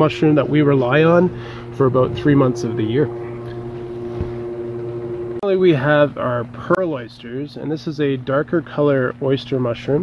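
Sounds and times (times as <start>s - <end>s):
ventilation fan humming: 0.0s - 10.0s.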